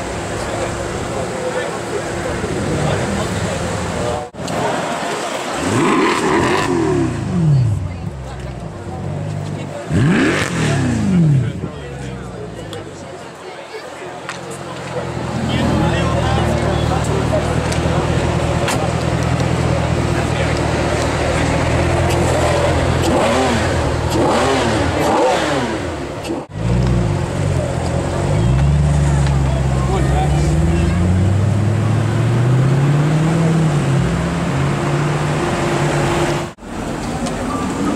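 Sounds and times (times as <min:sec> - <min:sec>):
car engine idling and accelerating: 0:00.0 - 0:37.9.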